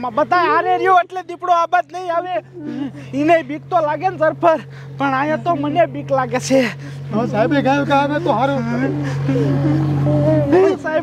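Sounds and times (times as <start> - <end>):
engine idling: 0.0 - 11.0
people talking: 0.0 - 11.0.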